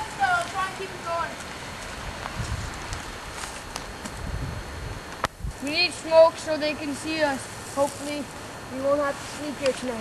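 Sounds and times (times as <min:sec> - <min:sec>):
footsteps in dry leaves: 0:00.0 - 0:04.3, 0:07.1 - 0:10.0
faint crackles: 0:00.0 - 0:04.4, 0:05.0 - 0:10.0
low rumbles: 0:00.0 - 0:08.8
steady outdoor hiss: 0:00.0 - 0:10.0.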